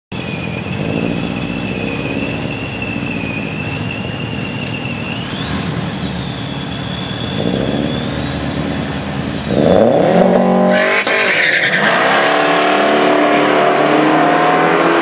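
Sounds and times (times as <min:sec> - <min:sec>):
turbocharged car engine idling: 0:00.2 - 0:11.1.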